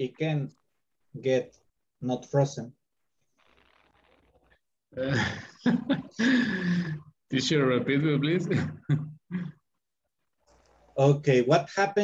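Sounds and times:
man laughing: 5.0 - 6.9.

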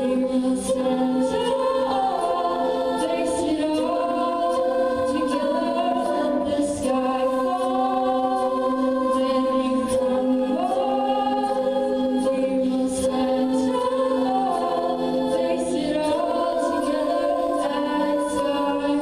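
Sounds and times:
female a cappella group singing: 0.0 - 19.0.

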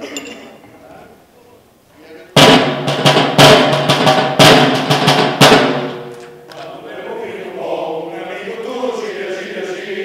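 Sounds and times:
side drum beaten with sticks: 2.4 - 6.1.

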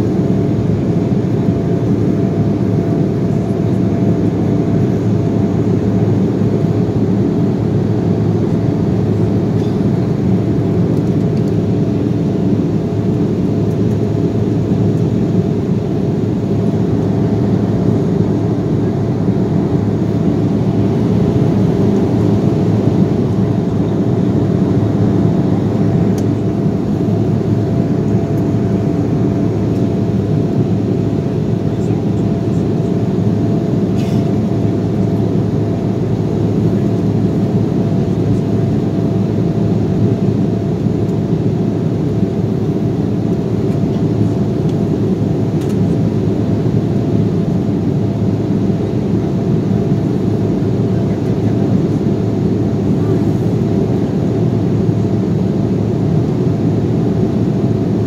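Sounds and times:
jet engines and airflow rush: 0.0 - 58.0
thin steady whine: 0.0 - 58.0.

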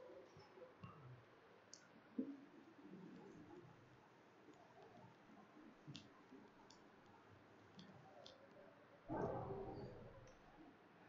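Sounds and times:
faint clicks: 0.2 - 2.4, 4.4 - 8.6.

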